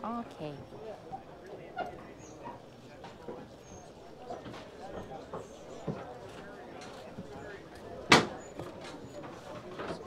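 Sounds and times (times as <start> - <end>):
murmur of crowd chatter: 0.0 - 10.0.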